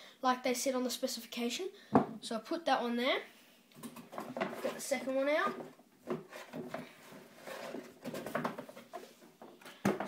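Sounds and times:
rubber fin scraping cardboard: 0:06.2 - 0:08.2.

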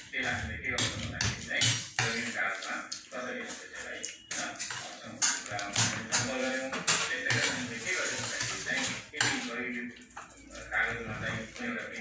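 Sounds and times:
fingers scraping food on plates: 0:00.2 - 0:09.5
plates clattering: 0:04.3 - 0:11.6.

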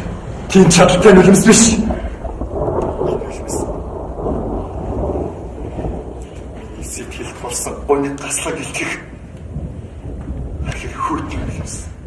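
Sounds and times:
rain: 0:00.0 - 0:12.0
thunder rumbling: 0:00.0 - 0:12.0
person speaking: 0:00.5 - 0:02.2, 0:10.6 - 0:12.0.

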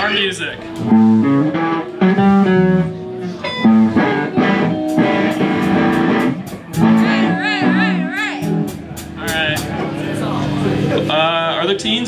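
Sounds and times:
electric guitars playing: 0:00.0 - 0:12.0.

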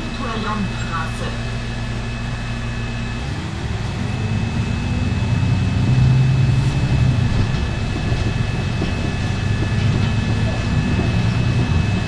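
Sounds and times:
bus engine accelerating: 0:00.0 - 0:12.0.

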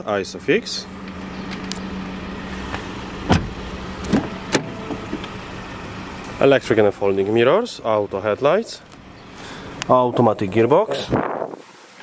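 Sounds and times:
low car hum: 0:00.0 - 0:11.3.

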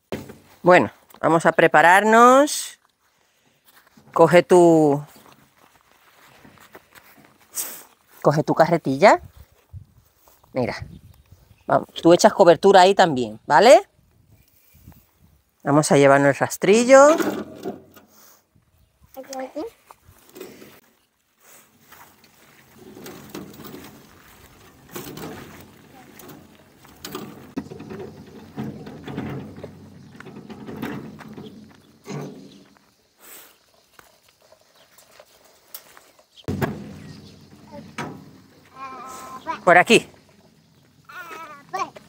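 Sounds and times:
metal wheelbarrow rattling: 0:00.0 - 0:00.9, 0:16.7 - 0:18.2, 0:21.8 - 0:33.1, 0:33.7 - 0:42.0
person speaking: 0:37.6 - 0:40.2, 0:41.1 - 0:42.0.

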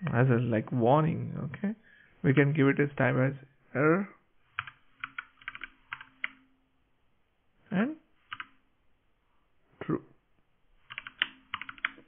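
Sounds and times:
typing on computer keyboard: 0:04.6 - 0:06.4, 0:08.3 - 0:08.6, 0:10.9 - 0:12.0.

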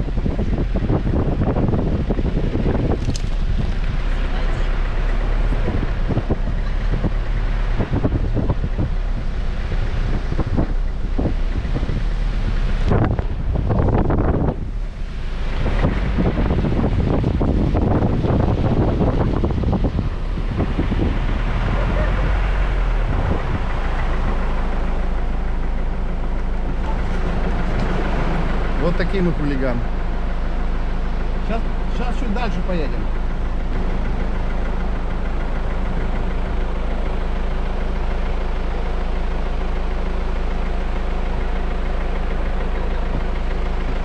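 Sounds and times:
wind buffeting microphone: 0:00.0 - 0:31.9
vehicle engine running: 0:00.0 - 0:44.0.

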